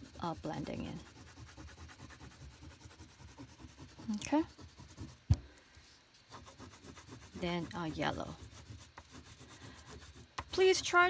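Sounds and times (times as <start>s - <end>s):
oil pastel rubbing on paper: 0.0s - 5.3s, 6.2s - 11.0s.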